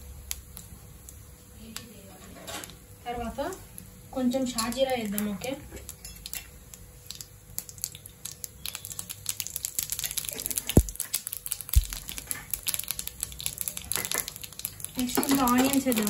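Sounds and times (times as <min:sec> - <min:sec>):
seeds crackling in hot oil: 0:00.0 - 0:16.0.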